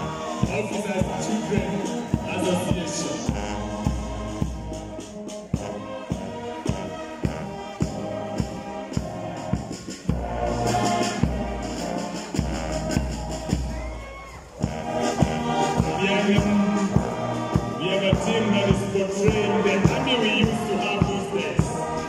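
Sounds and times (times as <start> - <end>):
band playing march music: 0.0 - 22.0
steady drum beat: 0.0 - 22.0.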